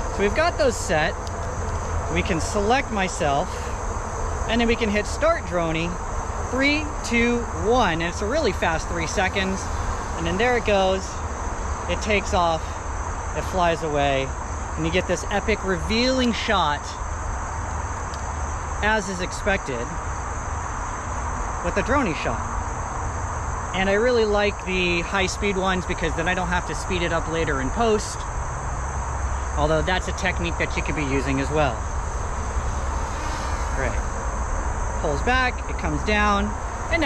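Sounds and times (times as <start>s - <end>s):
freeway traffic rumble: 0.0s - 37.0s
high-pitched insect drone: 0.0s - 37.0s
high-pitched buzz: 30.4s - 37.0s.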